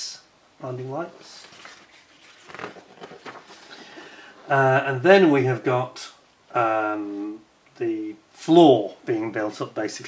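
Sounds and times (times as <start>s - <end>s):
paper pages rustling: 1.2s - 4.1s.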